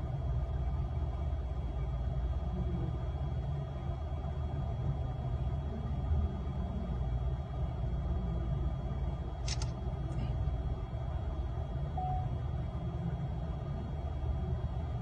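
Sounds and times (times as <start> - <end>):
faint high whine: 0.0 - 15.0
low background rumble: 0.0 - 15.0.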